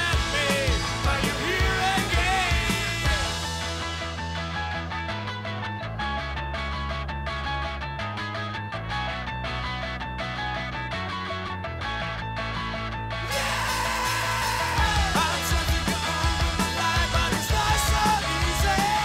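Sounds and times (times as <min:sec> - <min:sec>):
bass notes: 0:00.0 - 0:19.0
held guitar chords: 0:00.0 - 0:19.0.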